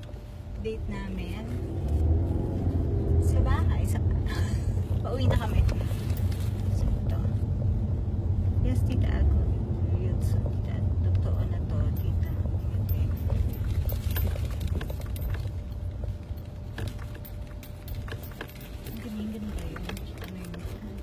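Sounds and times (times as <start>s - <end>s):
car cabin road rumble: 0.0s - 21.0s.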